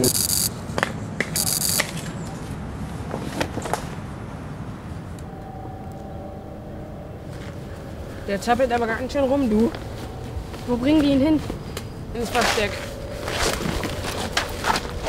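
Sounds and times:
faint steady hum: 0.0s - 2.8s.

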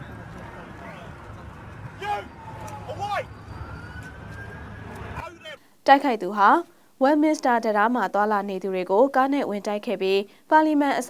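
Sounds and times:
emergency vehicle siren wailing: 0.0s - 5.5s
low street rumble: 0.0s - 5.6s
person shouting: 2.0s - 3.3s.

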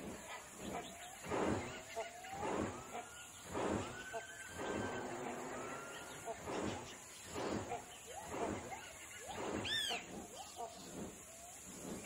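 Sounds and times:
bird wingbeats whooshing: 0.0s - 12.0s.

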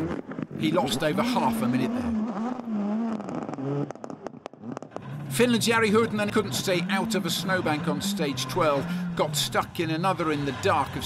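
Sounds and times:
car engine: 0.0s - 11.0s.

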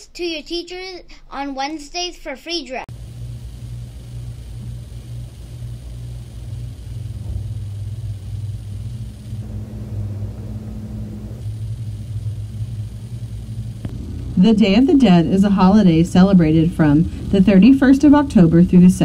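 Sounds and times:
low rumbling hum: 2.9s - 19.0s.

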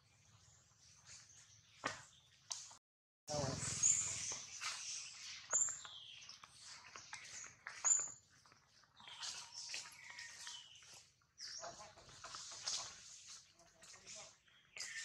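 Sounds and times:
monkeys squeaking and chirping: 3.3s - 5.9s.

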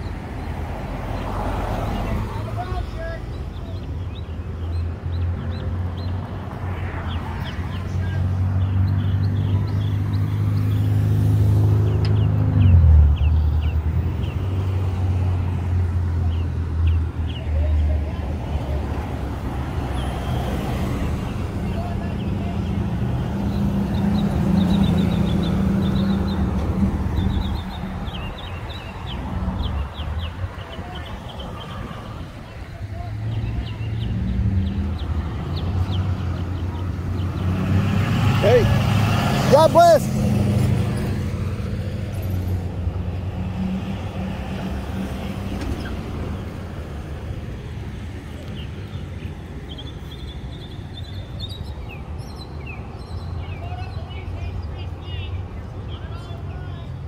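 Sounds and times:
loud vehicle passing: 0.0s - 2.8s, 5.0s - 52.2s
street traffic rumble: 0.0s - 57.0s.

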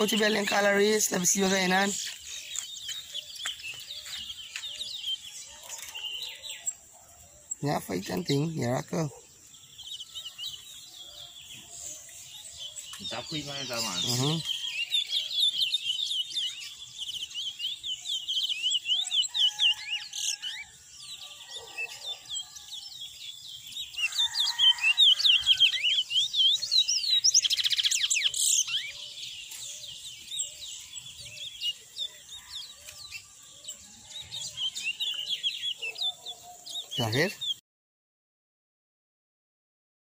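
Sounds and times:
finches twittering song: 0.0s - 37.6s.

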